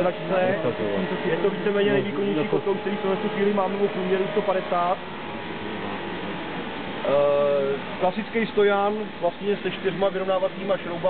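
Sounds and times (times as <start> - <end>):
faint steady tones: 0.0 - 11.0.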